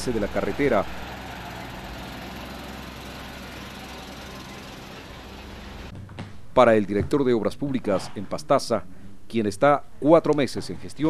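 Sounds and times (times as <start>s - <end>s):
truck diesel engine running: 0.0s - 5.9s
road noise: 0.0s - 6.0s.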